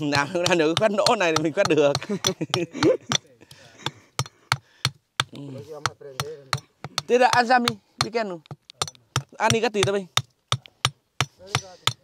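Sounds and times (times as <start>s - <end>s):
hammer tapping on stone: 0.0s - 12.0s.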